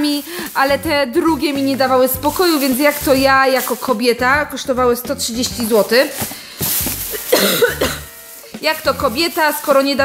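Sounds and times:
plastic bag rustling: 0.0 - 10.0.

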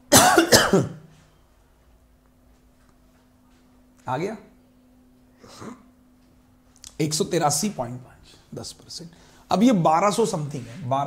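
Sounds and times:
man coughing: 0.1 - 1.0.

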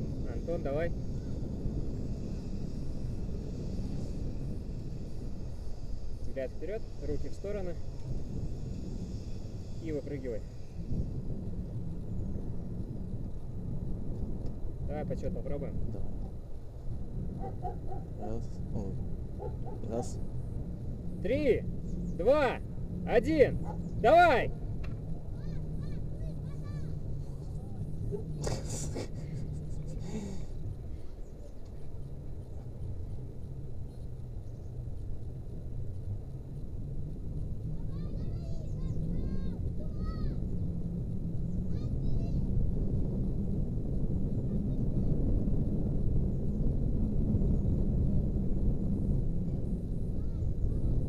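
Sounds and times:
steady low rumble: 0.0 - 51.0
wind buffeting microphone: 0.0 - 51.0.

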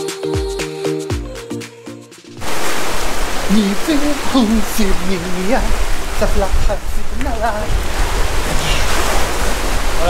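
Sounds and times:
background music: 0.0 - 2.4
wind buffeting microphone: 2.4 - 10.0
man speaking: 3.4 - 7.8.

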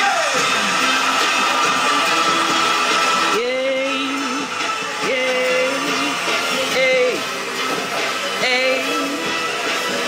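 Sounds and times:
live pop music from television: 0.0 - 10.0.

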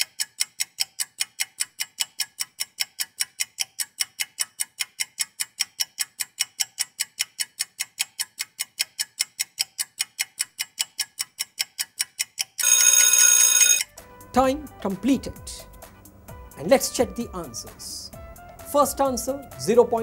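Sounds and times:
rapid clock ticking: 0.0 - 13.8
loud steady alarm: 12.6 - 13.9.

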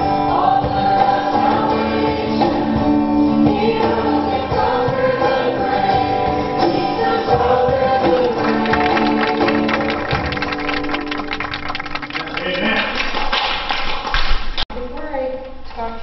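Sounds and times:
voices singing: 0.0 - 9.9
acoustic guitar strumming: 0.0 - 12.2.

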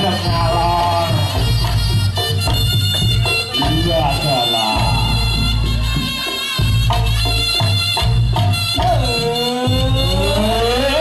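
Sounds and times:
live band music: 0.0 - 11.0.

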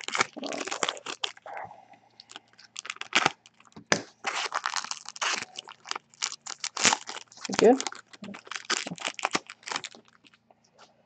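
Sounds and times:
foil wrapper crinkling: 0.0 - 1.6, 2.2 - 10.4.

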